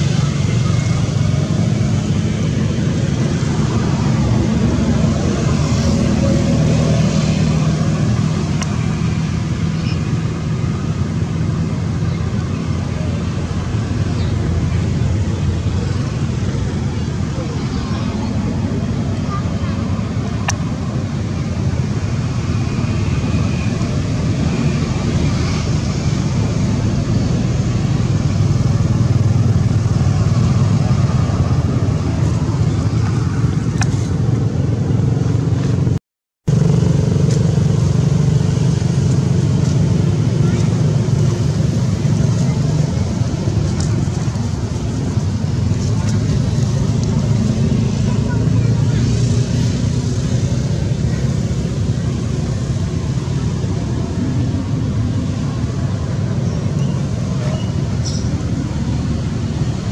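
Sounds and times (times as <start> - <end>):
low rumble of vehicle engines: 0.0 - 59.9.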